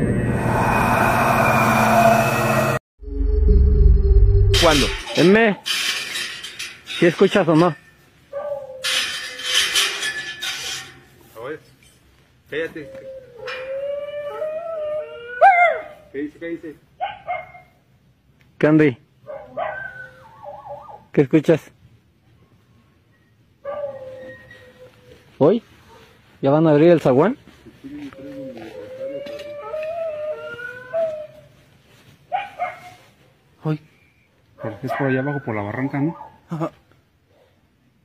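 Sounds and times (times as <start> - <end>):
dog howling: 0.0 - 2.8, 12.8 - 16.0, 28.2 - 31.5
second lower dog howl: 0.2 - 2.8, 13.0 - 15.9, 28.2 - 31.4.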